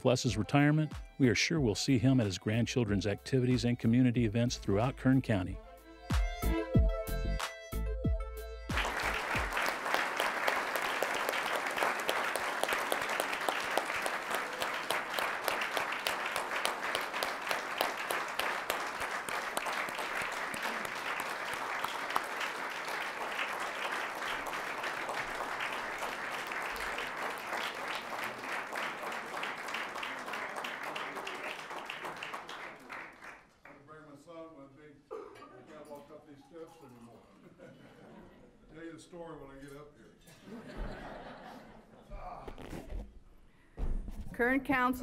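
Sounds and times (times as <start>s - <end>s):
audience applauding: 8.7s - 33.8s.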